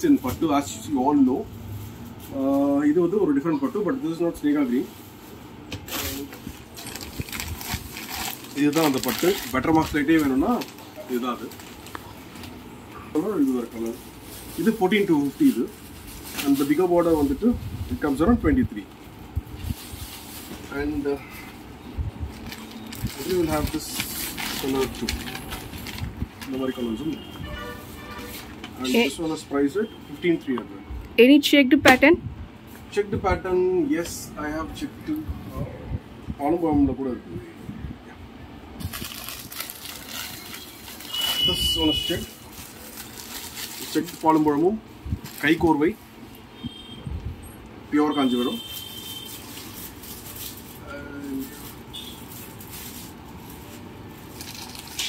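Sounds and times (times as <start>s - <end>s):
plastic packets crinkling: 5.9s - 21.1s, 22.3s - 27.2s, 38.8s - 46.0s, 48.5s - 55.0s.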